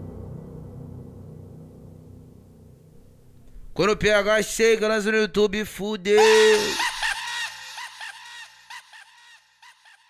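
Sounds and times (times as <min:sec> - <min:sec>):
echoing laugh: 0:06.2 - 0:10.0.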